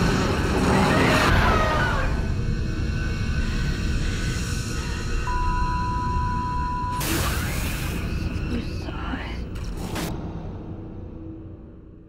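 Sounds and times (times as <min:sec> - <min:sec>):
hissing whispered voice: 0:08.2 - 0:09.5.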